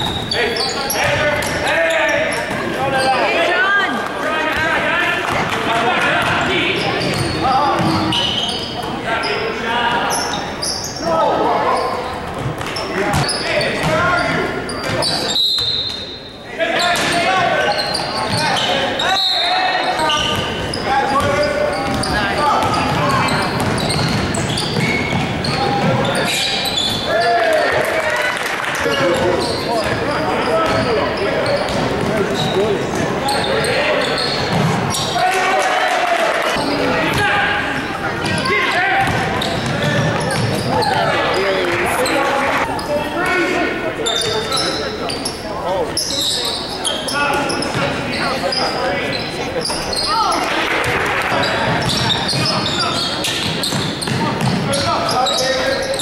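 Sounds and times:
basketballs bouncing on hardwood: 21.2 - 26.0, 34.5 - 34.8, 39.0 - 40.7, 53.3 - 54.7.

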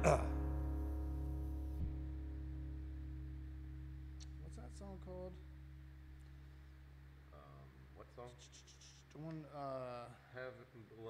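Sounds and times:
short voice sound: 0.0 - 0.4
acoustic guitar chord ringing: 0.0 - 7.5
low hum: 0.0 - 9.6.

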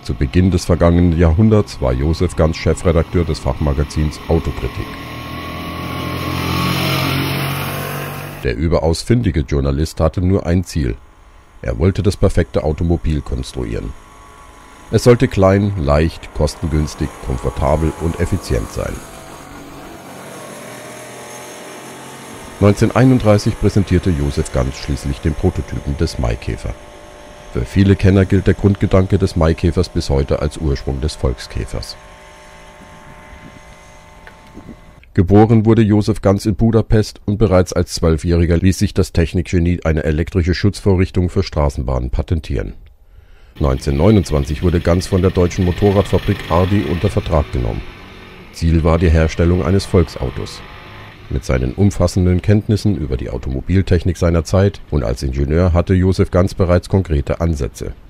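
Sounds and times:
small two-stroke car driving by: 0.0 - 8.5, 9.9 - 35.0, 43.6 - 58.0.

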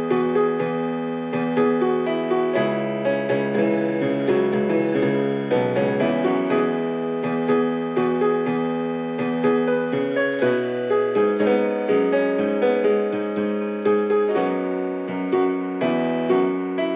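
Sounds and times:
slow gentle solo piano: 0.0 - 16.9.

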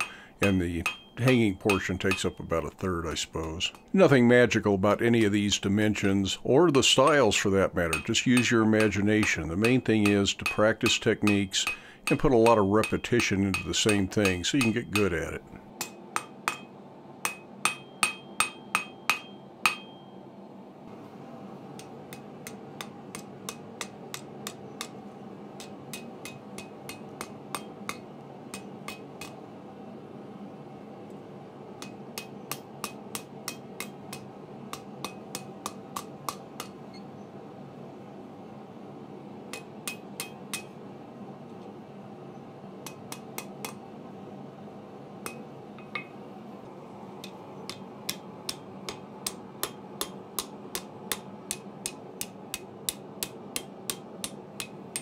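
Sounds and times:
hammer striking metal on anvil: 0.0 - 2.6, 6.0 - 15.2, 15.8 - 20.2, 21.8 - 25.0, 25.6 - 29.4, 31.8 - 37.0, 39.5 - 40.8, 42.8 - 43.8, 45.2 - 46.2, 47.2 - 55.0
steady background hiss: 0.0 - 55.0.

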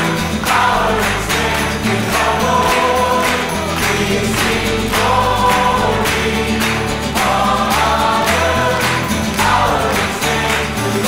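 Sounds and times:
choir singing worship song: 0.0 - 11.0.

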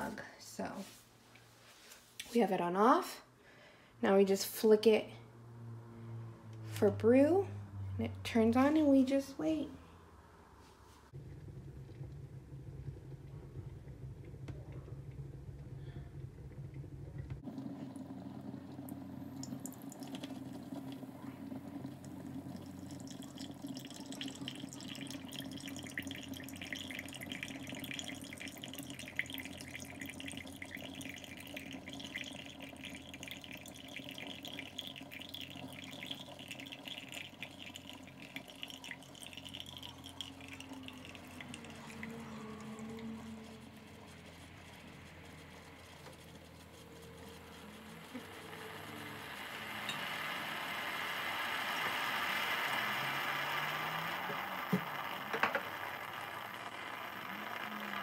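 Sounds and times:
steady low hum: 9.6 - 50.0
coffee trickling into a mug: 11.3 - 58.0
steam hissing and sputtering: 47.7 - 58.0.

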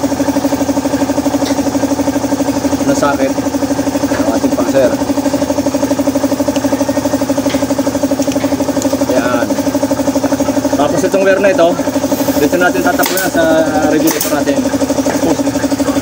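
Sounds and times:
motorcycle engine idling: 0.0 - 16.0.

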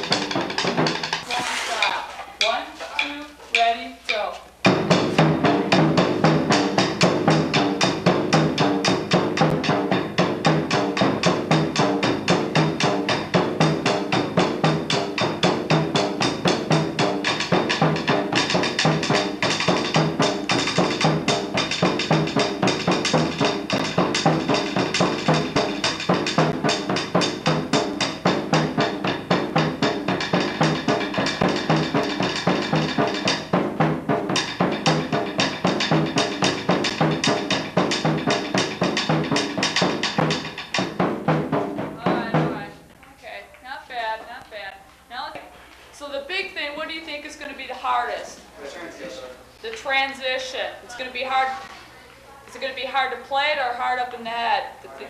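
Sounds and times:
marching drumline: 0.0 - 42.9.

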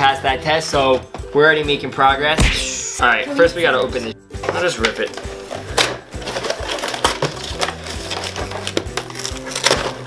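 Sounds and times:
background music with beat: 2.1 - 4.5
cardboard boxes tearing: 6.3 - 10.0.

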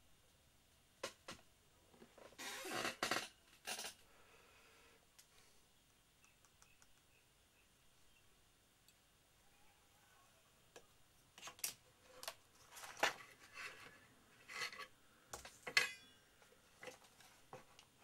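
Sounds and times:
tools handled on a workbench: 10.8 - 16.2, 16.8 - 17.9.

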